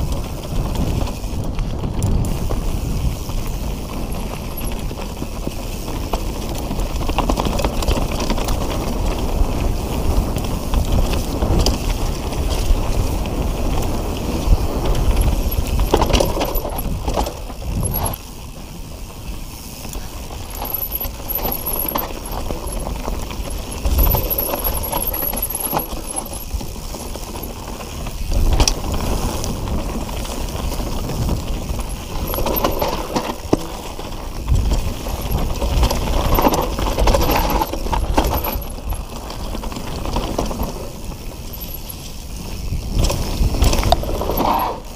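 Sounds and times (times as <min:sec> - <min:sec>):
bike chain rattling and clicking: 0:00.0 - 0:44.9
wind buffeting microphone: 0:00.0 - 0:44.9.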